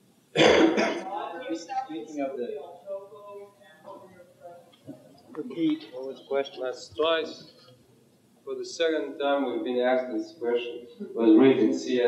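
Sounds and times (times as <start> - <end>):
person clearing throat: 0.4 - 1.0
indistinct talking: 0.4 - 12.0.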